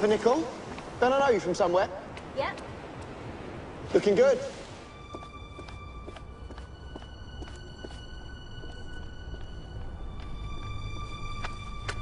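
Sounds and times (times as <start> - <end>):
footsteps: 4.6 - 12.0
background music held notes: 4.8 - 12.0.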